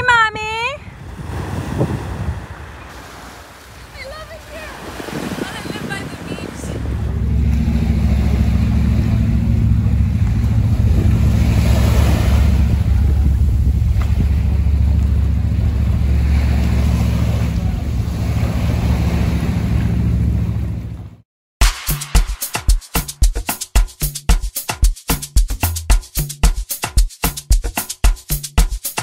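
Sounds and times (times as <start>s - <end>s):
sea waves washing onto beach: 1.0s - 20.2s
steady low rumble: 6.3s - 21.2s.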